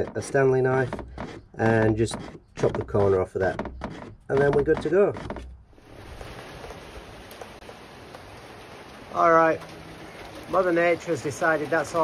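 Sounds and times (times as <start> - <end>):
steady rain hiss: 5.7 - 12.0
faint raindrop taps: 5.9 - 12.0.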